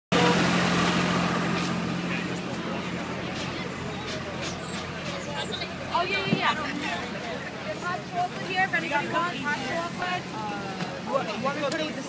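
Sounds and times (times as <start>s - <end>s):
engine humming: 0.1s - 12.0s
outdoor noise: 0.1s - 12.0s.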